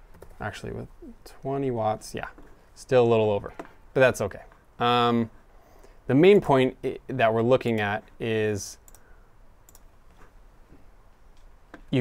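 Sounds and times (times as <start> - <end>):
faint computer mouse clicks: 8.9 - 9.1, 9.7 - 10.3.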